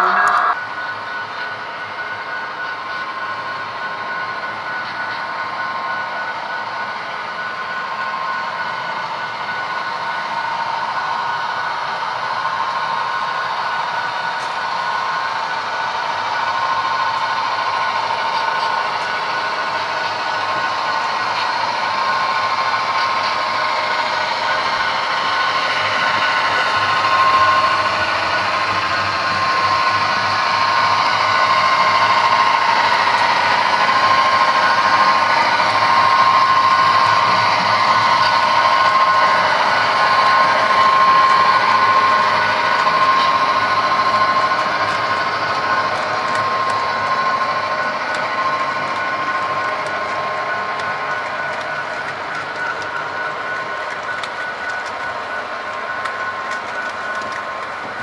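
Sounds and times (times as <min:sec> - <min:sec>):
model train running on track: 0:00.0 - 0:58.0.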